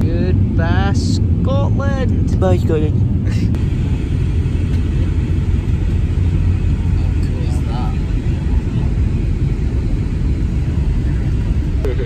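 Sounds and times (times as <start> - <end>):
airliner cabin engine rumble: 0.0 - 12.0.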